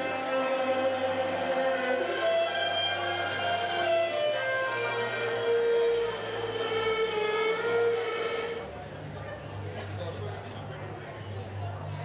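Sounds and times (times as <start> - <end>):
steam train whistle: 0.0 - 8.7.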